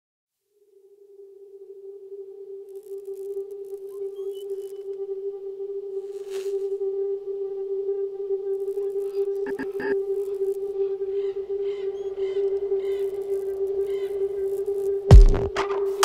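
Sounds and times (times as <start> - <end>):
low drone tone: 0.6 - 16.0.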